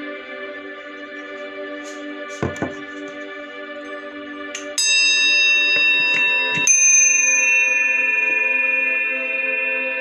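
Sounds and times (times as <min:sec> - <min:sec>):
brass hand bell ringing: 0:04.8 - 0:10.0.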